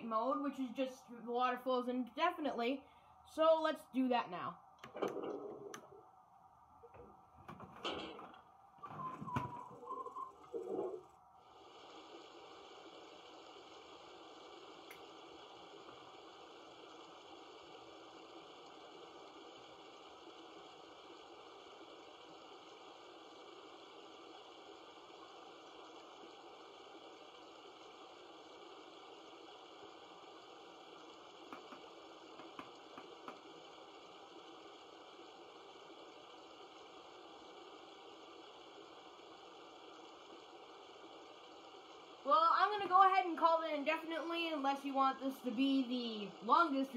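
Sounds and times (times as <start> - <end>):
hiss of flowing water: 8.8 - 46.9.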